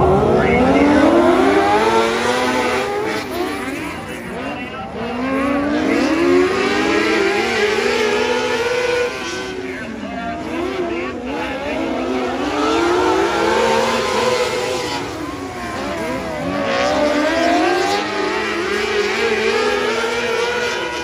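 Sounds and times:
race car engines: 0.0 - 21.0.

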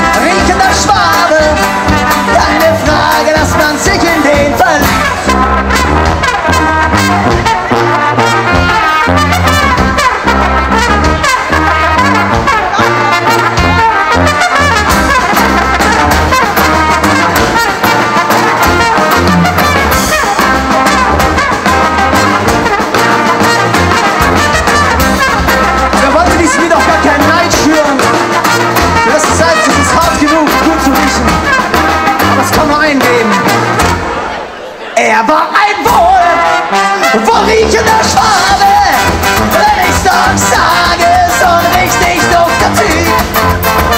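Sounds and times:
drum kit: 0.0 - 34.5, 35.8 - 43.9
trombone: 0.0 - 34.6, 35.8 - 43.9
trumpet: 0.0 - 34.6, 35.4 - 43.9.

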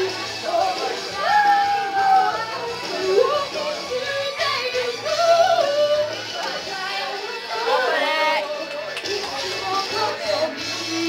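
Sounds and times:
backing track with steady beat: 0.0 - 11.0
woman singing karaoke: 0.0 - 11.0.

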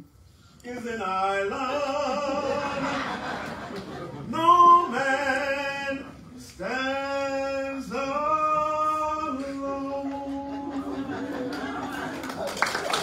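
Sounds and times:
man singing unaccompanied: 0.6 - 3.1, 4.3 - 11.3.

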